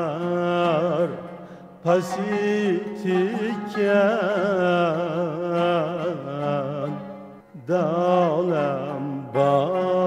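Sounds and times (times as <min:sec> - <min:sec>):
person singing ornamented notes: 0:00.0 - 0:10.0.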